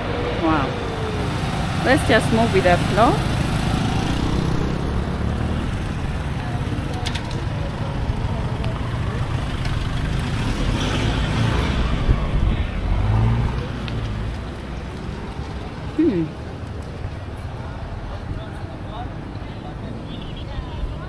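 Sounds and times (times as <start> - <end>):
pickup truck passing: 0.0 - 17.6
heavy low traffic rumble: 0.0 - 21.0
motorcycles passing: 0.0 - 21.0.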